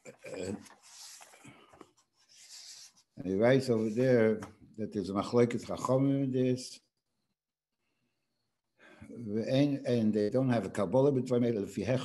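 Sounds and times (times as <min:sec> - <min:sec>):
breathing: 0:00.8 - 0:03.0, 0:08.8 - 0:09.2
soft inhale: 0:08.8 - 0:09.1.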